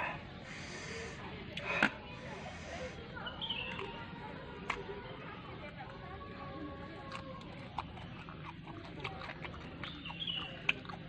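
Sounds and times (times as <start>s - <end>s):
man chewing and lip-smacking: 3.6s - 5.0s, 6.9s - 11.0s.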